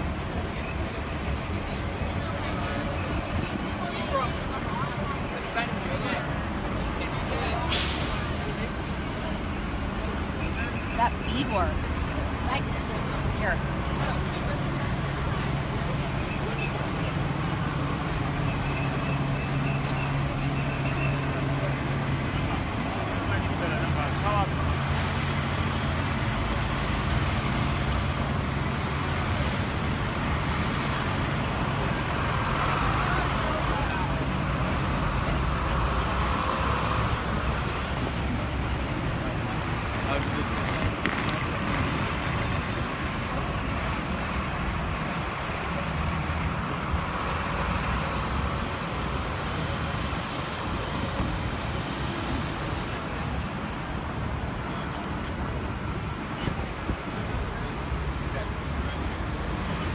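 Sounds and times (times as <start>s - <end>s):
city street traffic: 0.0s - 59.9s
pedestrians chattering: 0.0s - 59.9s.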